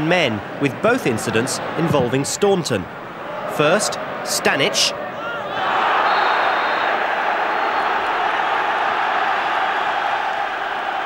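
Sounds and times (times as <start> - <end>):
stadium crowd roaring: 0.3 - 11.0.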